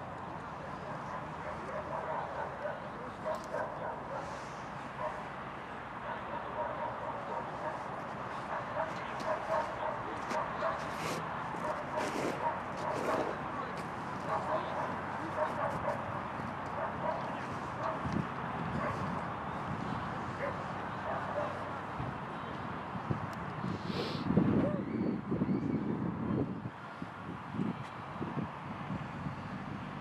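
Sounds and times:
dog barking: 0:00.8 - 0:04.4, 0:05.0 - 0:05.3, 0:06.0 - 0:11.0, 0:11.6 - 0:13.4, 0:14.3 - 0:16.1, 0:16.8 - 0:18.0, 0:18.8 - 0:19.0, 0:20.4 - 0:21.7.

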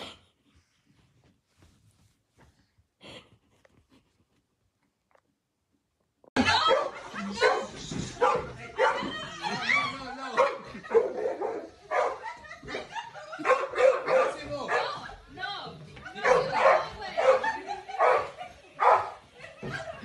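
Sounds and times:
dog barking and yipping: 0:06.6 - 0:09.1, 0:10.4 - 0:12.4, 0:13.4 - 0:15.1, 0:16.2 - 0:19.2.

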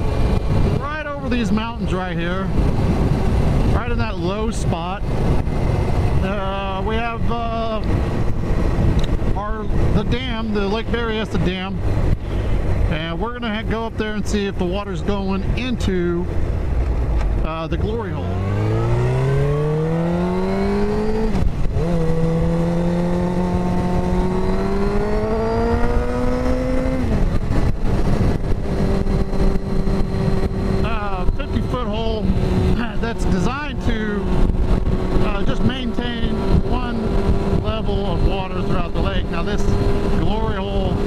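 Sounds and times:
motorcycle engine accelerating: 0:00.0 - 0:13.4, 0:16.3 - 0:41.0.

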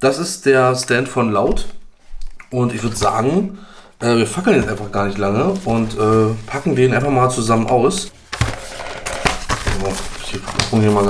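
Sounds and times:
cardboard rustling: 0:04.0 - 0:11.0.

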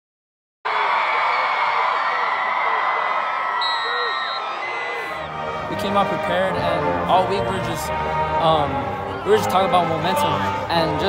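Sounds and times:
crowd cheering and shouting: 0:00.7 - 0:06.2, 0:08.0 - 0:11.0.

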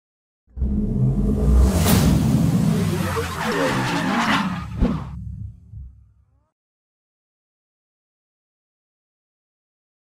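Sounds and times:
rumbling swishing sweep: 0:00.6 - 0:03.6
sharp hit: 0:01.0 - 0:03.2.

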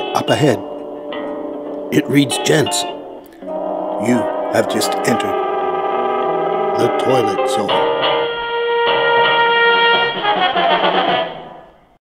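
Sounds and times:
sustained music chords: 0:00.0 - 0:11.9.

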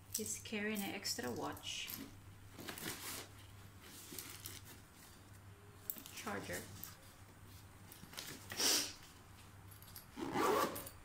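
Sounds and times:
scratchy rustle of items in suitcase: 0:02.0 - 0:05.4, 0:10.1 - 0:10.9.

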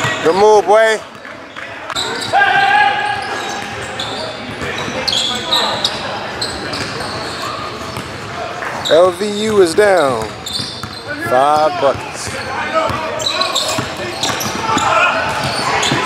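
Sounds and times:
players calling out: 0:00.0 - 0:16.0
basketball dribbling: 0:09.5 - 0:16.0.

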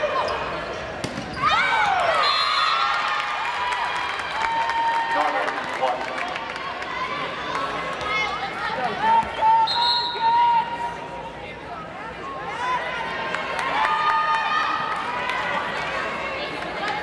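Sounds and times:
voices in a gym: 0:00.0 - 0:17.0.

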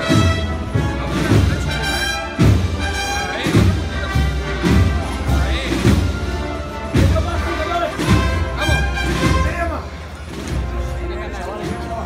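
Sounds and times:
heavy drum strokes: 0:00.0 - 0:12.0
held brass notes: 0:00.0 - 0:12.0
processional band playing a march: 0:00.0 - 0:12.0.

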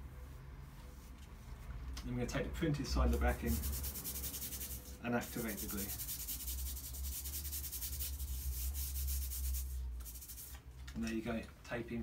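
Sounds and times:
tape backing rubbing on skin: 0:03.1 - 0:10.6.

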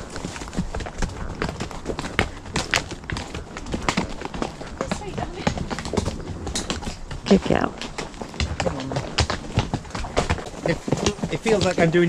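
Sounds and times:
horse hooves on stony track: 0:00.0 - 0:12.0.

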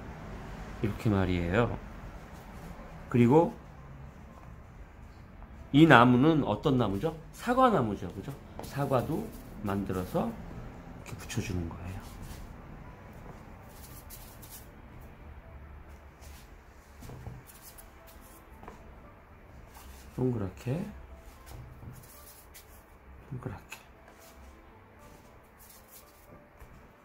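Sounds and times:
soft brushing: 0:02.1 - 0:05.2, 0:08.0 - 0:10.6, 0:11.6 - 0:14.8, 0:15.9 - 0:18.9, 0:19.6 - 0:23.0, 0:24.0 - 0:26.9
scratchy brush: 0:11.9 - 0:12.6, 0:13.6 - 0:14.7, 0:16.2 - 0:18.4, 0:21.2 - 0:22.9, 0:24.1 - 0:26.4
hands rubbing modelling clay: 0:24.1 - 0:26.4.

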